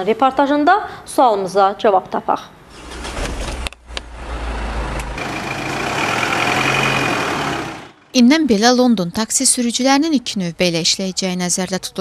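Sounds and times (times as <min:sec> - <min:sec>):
ignition key starting engine: 0:02.7 - 0:03.8
car engine humming: 0:02.7 - 0:08.1.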